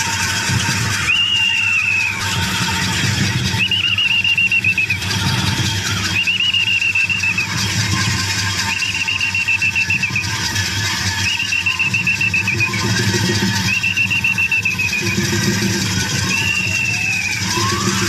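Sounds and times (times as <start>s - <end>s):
low steady rumble: 0.0s - 18.0s
metal pivot squealing: 0.0s - 18.0s.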